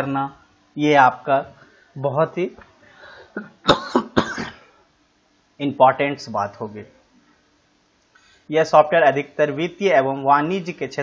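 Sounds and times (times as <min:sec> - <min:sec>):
man coughing: 0:03.3 - 0:04.8.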